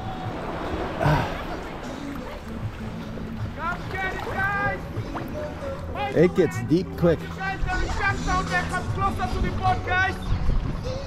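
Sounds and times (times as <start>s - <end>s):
small waves lapping: 0.0s - 11.0s.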